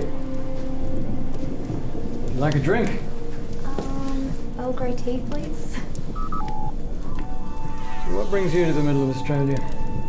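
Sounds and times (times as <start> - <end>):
soft background music tone: 0.0 - 10.0
electronic beeps: 6.2 - 9.2.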